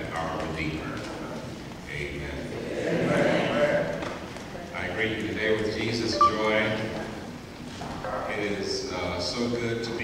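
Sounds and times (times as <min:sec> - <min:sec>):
man speaking into a microphone: 0:04.8 - 0:06.9, 0:08.2 - 0:10.0.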